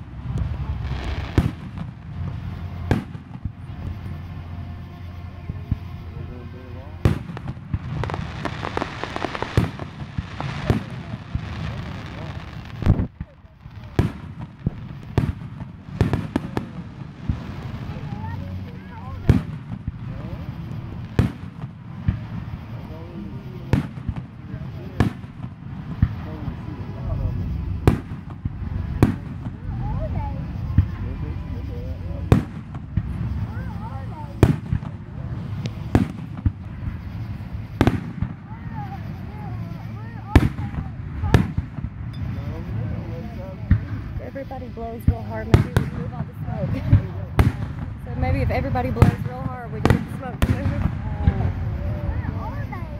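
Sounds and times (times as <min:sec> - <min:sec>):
fireworks bursting with bangs: 0:00.0 - 0:52.9
low rumble of bursts and echoes: 0:00.0 - 0:52.9.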